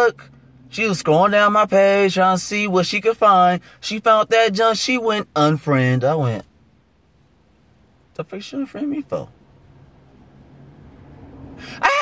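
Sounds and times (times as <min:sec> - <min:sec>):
low steady hum: 0:00.0 - 0:11.7.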